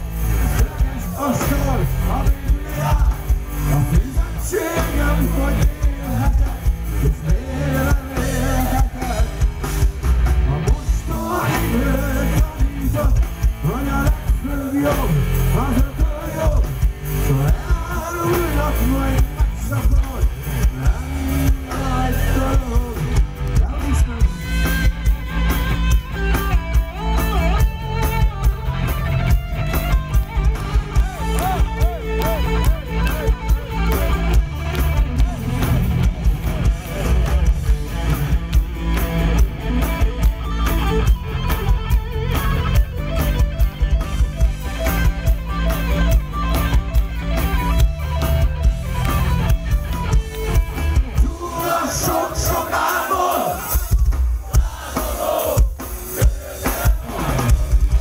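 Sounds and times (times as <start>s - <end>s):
heavy metal band playing live: 0.0s - 58.0s.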